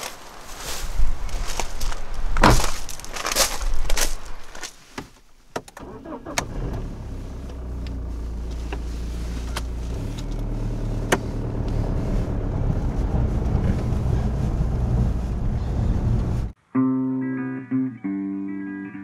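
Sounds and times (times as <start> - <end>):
car engine running: 5.8 - 16.6.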